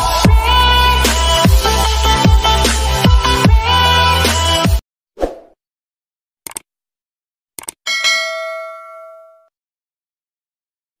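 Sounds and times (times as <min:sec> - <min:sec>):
sharp clicks: 0:06.4 - 0:06.7, 0:07.6 - 0:07.8.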